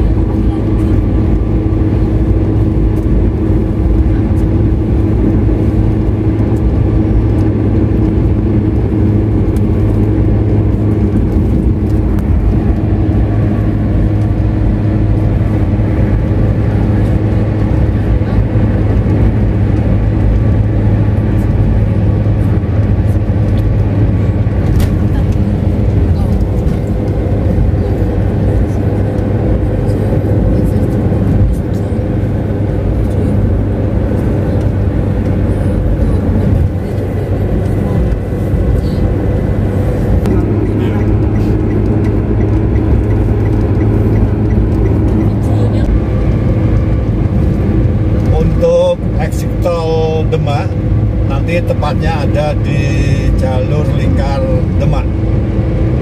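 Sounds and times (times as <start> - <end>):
car engine hum: 0.0 - 56.0
tyre noise on road: 0.0 - 56.0.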